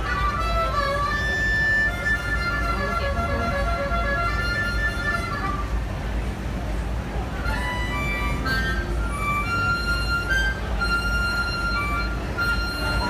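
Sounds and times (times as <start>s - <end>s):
harmonica chords: 0.0s - 6.0s, 7.3s - 13.0s
low rumble of vehicles: 0.0s - 13.0s.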